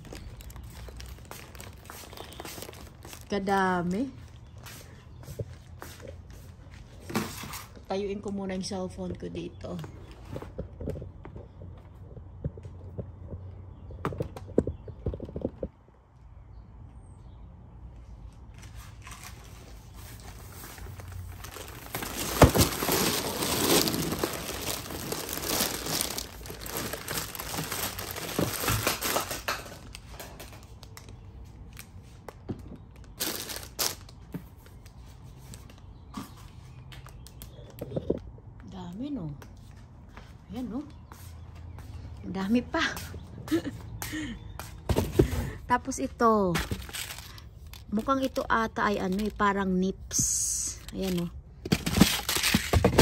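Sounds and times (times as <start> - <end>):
plastic candy packets crinkling: 0.0 - 4.6, 18.6 - 35.9, 46.6 - 53.0.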